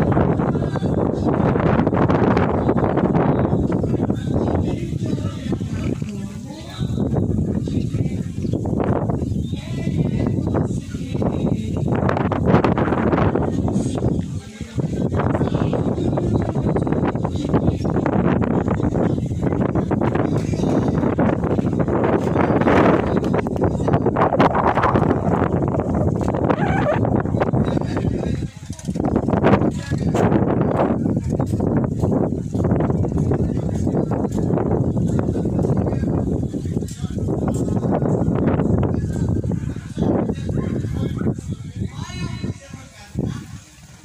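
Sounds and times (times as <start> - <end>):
gusty wind thumps: 0.0 - 41.8
wind rumble on microphone: 0.0 - 44.0.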